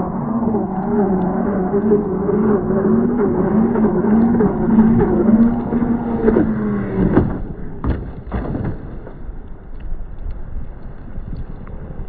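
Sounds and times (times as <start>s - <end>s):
electric motors whining: 0.0s - 7.8s
hull rushing through water: 0.0s - 12.0s.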